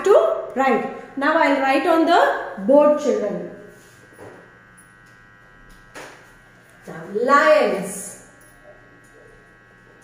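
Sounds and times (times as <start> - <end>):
faint electrical buzz: 0.0 - 10.0.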